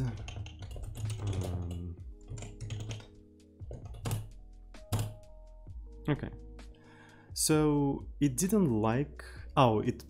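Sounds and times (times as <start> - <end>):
keyboard typing: 0.0 - 5.2
background music with held notes: 0.0 - 10.0.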